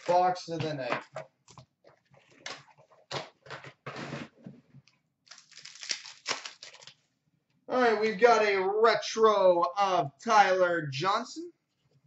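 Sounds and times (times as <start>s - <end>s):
scuffs and rustles of card packs: 0.0s - 0.9s, 5.3s - 7.0s
wrapper tearing open: 5.2s - 7.0s.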